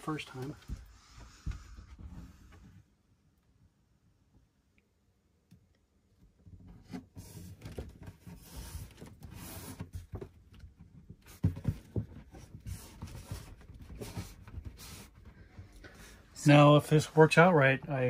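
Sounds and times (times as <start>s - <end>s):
rubbing and scuffing on wall: 0.0s - 2.8s, 6.7s - 18.0s.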